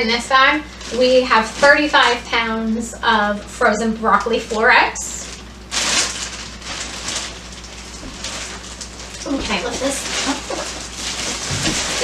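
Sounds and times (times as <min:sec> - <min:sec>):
plastic bags crinkling: 0:00.0 - 0:02.6, 0:04.9 - 0:12.0.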